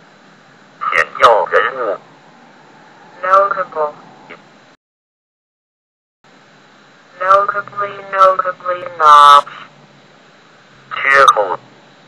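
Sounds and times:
faint steady hiss: 0.0s - 4.8s, 6.3s - 12.0s
text-to-speech voice reading words: 0.8s - 2.0s, 3.2s - 4.4s, 7.1s - 9.7s, 10.9s - 11.6s.

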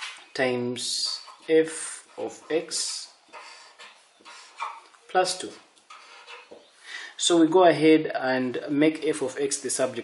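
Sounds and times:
marker scratching on paper: 2.1s - 4.9s.

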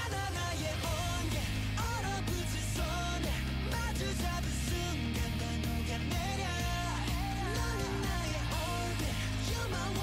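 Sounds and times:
guitar: 0.0s - 10.0s
pop-rock song with male vocals: 0.0s - 10.0s.

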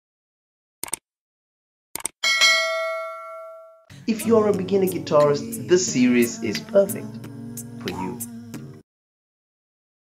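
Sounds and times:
bell ding: 2.2s - 3.9s.

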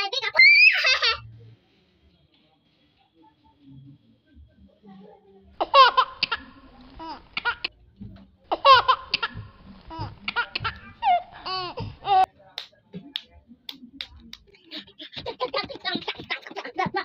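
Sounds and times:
high-pitched laughter: 0.4s - 1.2s.

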